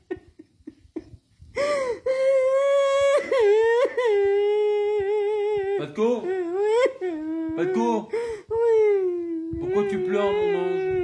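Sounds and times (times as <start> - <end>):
woman wailing and crying: 1.6 - 11.0.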